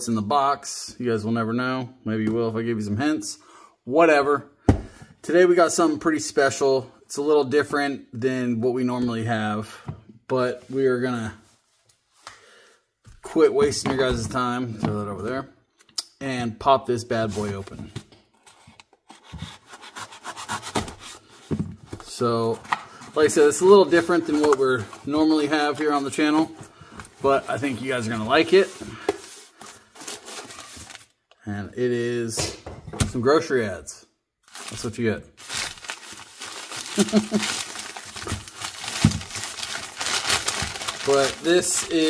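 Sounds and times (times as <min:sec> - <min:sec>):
paper crinkling and rustling: 0:21.9 - 0:31.2, 0:34.5 - 0:42.0.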